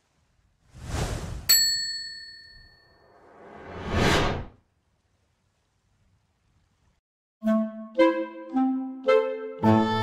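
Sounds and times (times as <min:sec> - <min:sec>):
short whoosh: 0:00.7 - 0:01.5
bright bell-like ding: 0:01.5 - 0:03.0.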